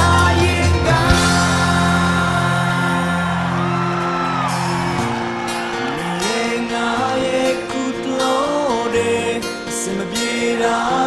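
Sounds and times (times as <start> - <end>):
man singing: 0.0 - 3.9, 5.9 - 11.0
electric and acoustic guitar chords: 0.0 - 11.0.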